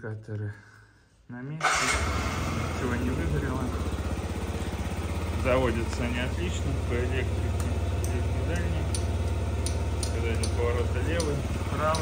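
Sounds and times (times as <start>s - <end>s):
scooter engine idling: 1.6s - 12.0s
turn signal clicking: 7.5s - 12.0s.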